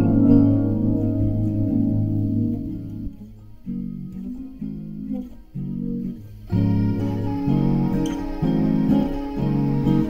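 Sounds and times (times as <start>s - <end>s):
guitar playing low chords: 0.0s - 10.0s.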